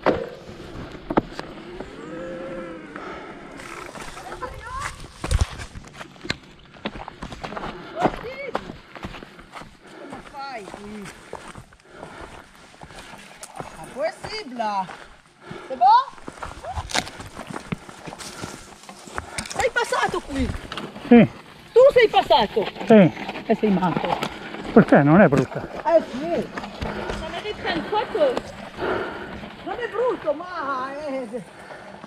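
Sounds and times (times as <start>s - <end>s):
footfalls on rocky trail: 3.0s - 32.0s
riders calling out and talking: 19.4s - 32.0s.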